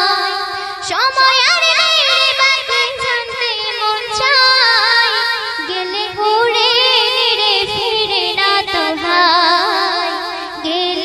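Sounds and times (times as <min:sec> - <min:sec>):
girl singing into a microphone: 0:00.0 - 0:11.0.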